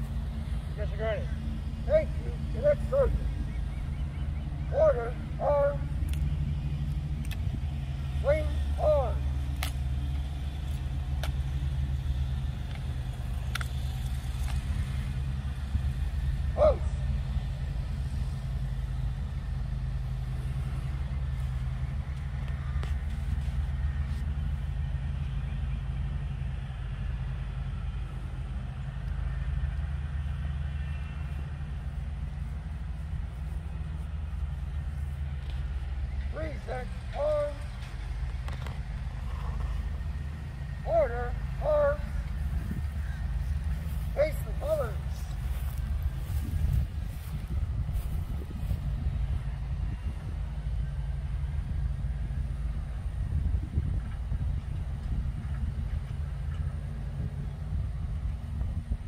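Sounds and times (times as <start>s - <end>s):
low outdoor rumble: 0.0s - 59.0s.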